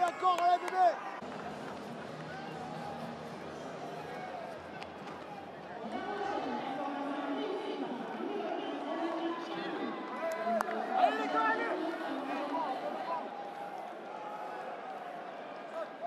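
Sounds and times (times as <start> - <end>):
crowd voices: 0.0 - 16.0.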